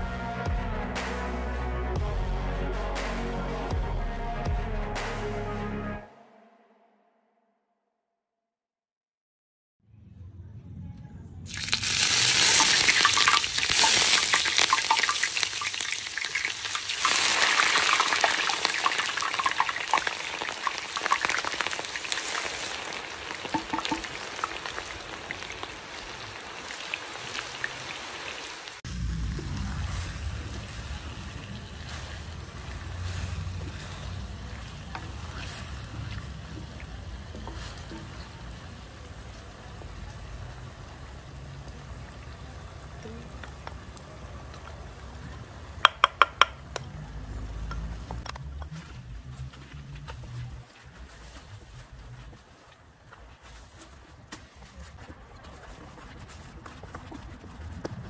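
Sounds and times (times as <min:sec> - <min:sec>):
low hum: 0:09.8 - 0:11.6, 0:28.9 - 0:37.0
onion sizzling in hot oil: 0:11.5 - 0:48.3.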